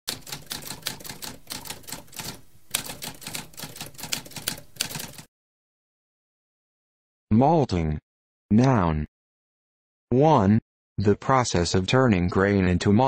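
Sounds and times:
typewriter key strikes: 0.1s - 5.2s.

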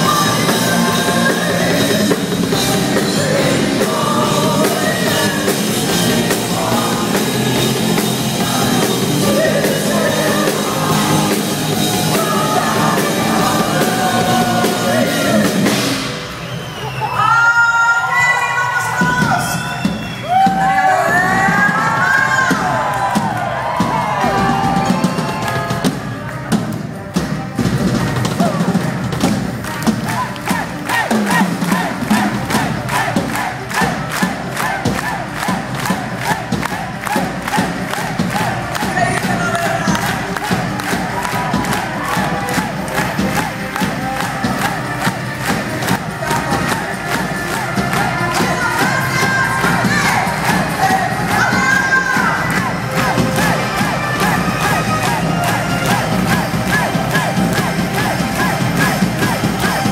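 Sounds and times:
audience cheering and shouting: 0.0s - 26.6s, 28.0s - 59.9s
fast clapping: 29.2s - 59.9s.

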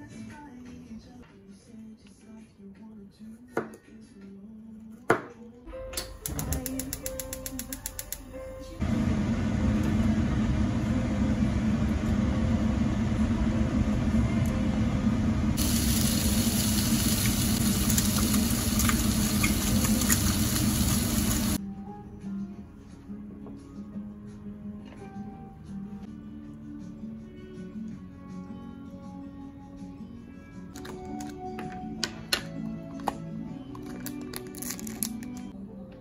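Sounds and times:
meat sizzling in a frying pan: 15.6s - 21.6s.

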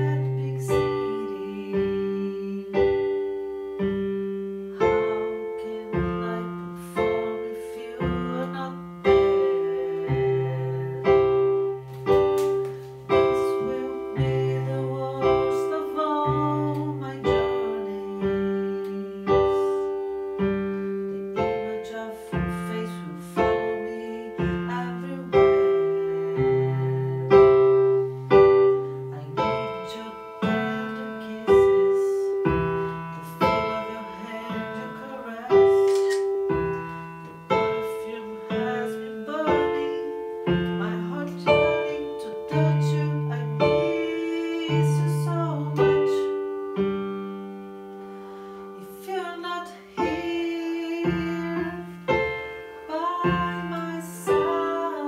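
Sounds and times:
electronic keyboard piano chords: 0.0s - 55.0s.

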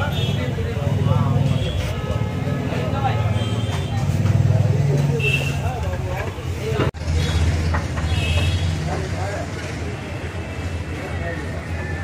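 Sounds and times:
people talking: 0.0s - 7.7s, 8.3s - 12.0s.

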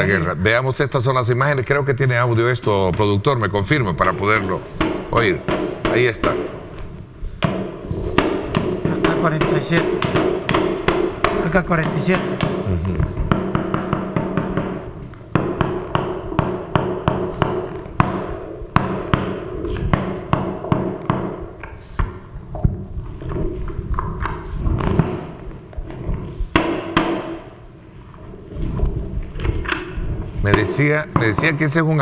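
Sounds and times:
sharp knocks and cracks: 4.0s - 27.6s.

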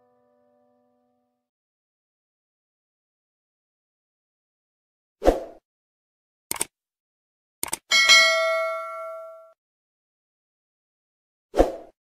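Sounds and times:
mouse clicks: 6.5s - 6.7s, 7.6s - 7.8s
notification bell ding: 7.9s - 9.6s.

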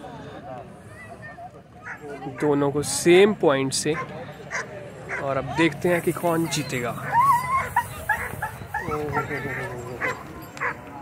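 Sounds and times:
dogs whining and yelping: 7.0s - 10.8s.

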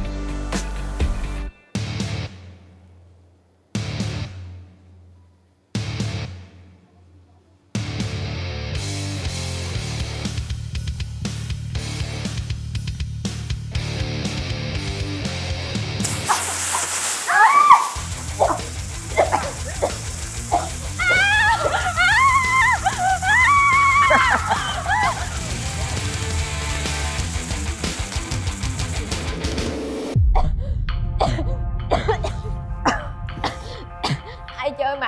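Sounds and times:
background music with bass: 0.0s - 2.5s, 3.8s - 4.6s, 5.8s - 6.6s, 7.8s - 16.1s, 22.9s - 34.7s
girls screaming in fright: 17.2s - 18.2s, 20.6s - 25.6s
woman coughing hard: 31.2s - 34.6s.

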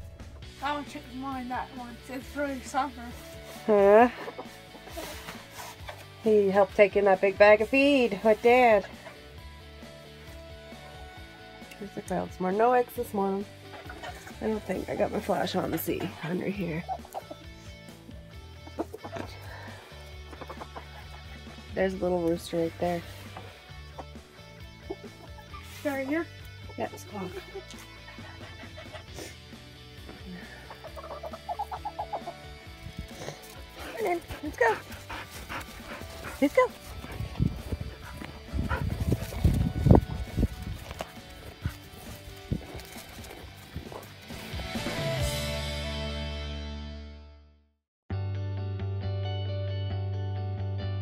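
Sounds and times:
background music with low held notes: 0.0s - 47.4s
chickens clucking: 3.4s - 6.0s, 13.5s - 21.7s, 23.2s - 26.1s, 27.2s - 44.4s
footsteps crunching on snow: 32.8s - 45.2s.

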